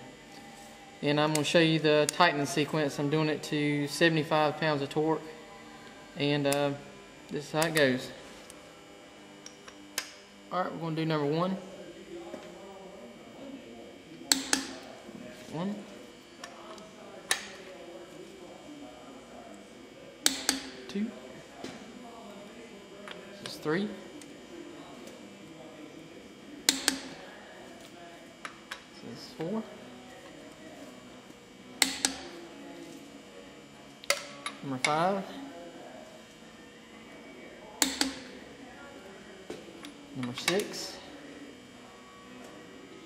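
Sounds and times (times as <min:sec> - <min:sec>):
torque wrench clicking: 0:26.7 - 0:27.1.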